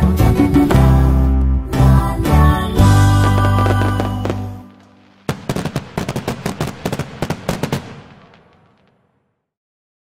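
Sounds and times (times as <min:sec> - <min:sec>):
fireworks crackling: 0:02.8 - 0:09.3.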